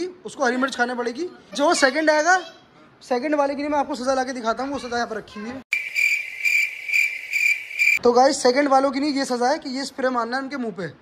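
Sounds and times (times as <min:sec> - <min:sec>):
cricket chirping sound effect: 0:05.7 - 0:08.0.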